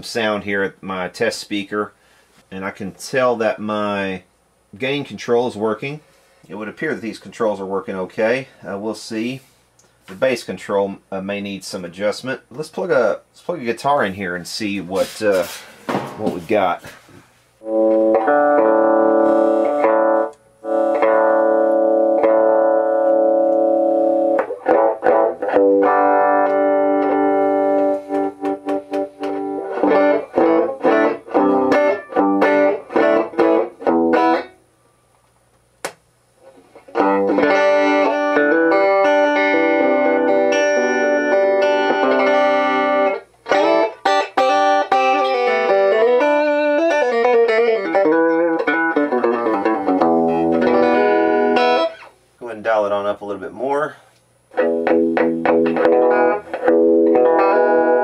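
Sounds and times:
electric guitar through amplifier: 15.5 - 34.6, 36.4 - 52.2, 54.3 - 58.0.

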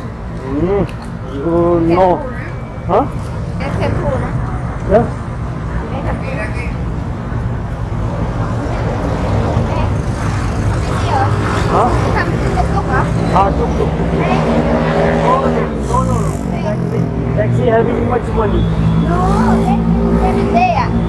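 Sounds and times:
vehicle engines running: 0.0 - 21.0.

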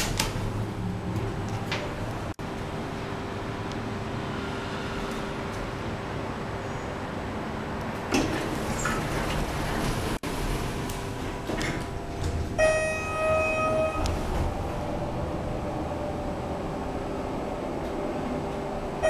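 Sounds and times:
elevator mechanical hum: 0.0 - 19.0
elevator doors clunk shut: 7.9 - 19.0.

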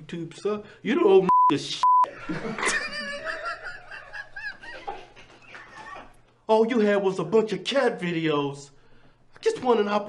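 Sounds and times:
man laughing out loud: 2.1 - 5.2.

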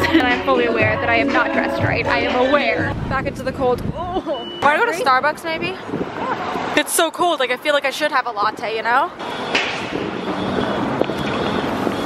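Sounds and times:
passing traffic: 0.0 - 12.0
wind buffeting microphone: 0.8 - 6.8, 8.4 - 12.0.

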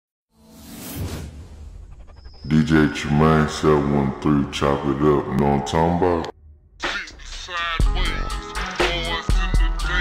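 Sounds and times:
whoosh: 0.4 - 2.6.

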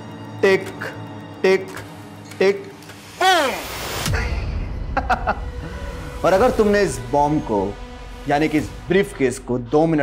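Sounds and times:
spoken bomb timer ticking: 0.0 - 2.7.

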